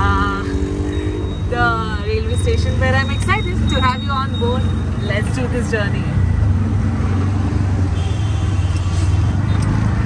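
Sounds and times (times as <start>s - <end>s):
auto-rickshaw engine running: 0.0s - 10.0s
road and traffic noise: 0.0s - 10.0s.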